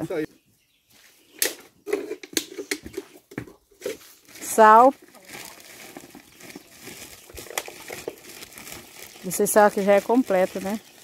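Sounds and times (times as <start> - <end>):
dry forage crackling and rustling: 3.7 - 11.0.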